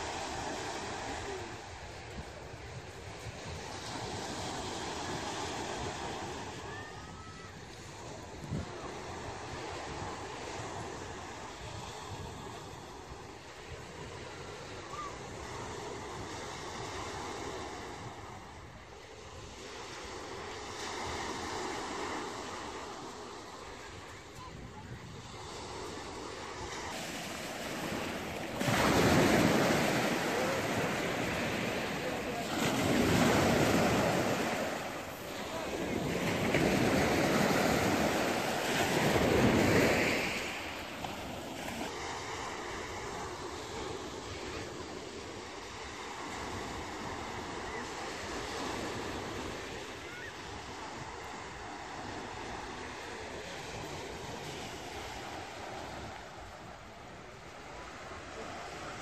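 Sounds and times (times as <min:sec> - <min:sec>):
sea waves breaking on shore: 0:00.0 - 0:59.0.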